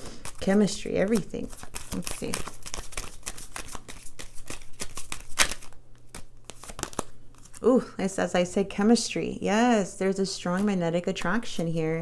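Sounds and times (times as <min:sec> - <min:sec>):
cards being shuffled: 0:00.1 - 0:07.6.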